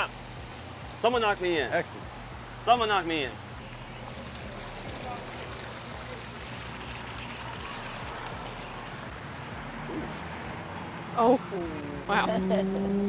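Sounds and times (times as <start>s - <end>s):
faint voices: 4.0s - 13.0s.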